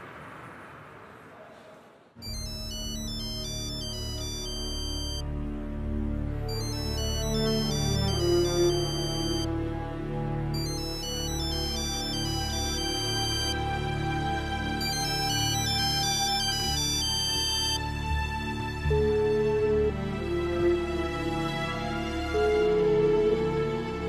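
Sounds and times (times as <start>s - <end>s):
electronic ringtone beeping melody: 2.2s - 5.2s, 6.5s - 9.5s, 10.6s - 13.7s, 14.8s - 17.8s.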